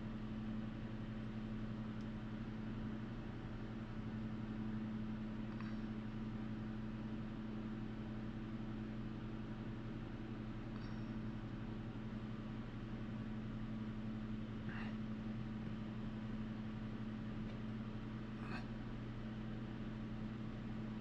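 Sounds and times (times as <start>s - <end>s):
space heater humming: 0.0s - 21.0s.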